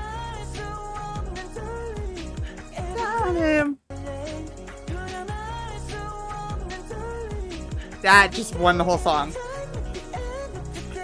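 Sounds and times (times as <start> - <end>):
pop song playing: 0.0 - 11.0.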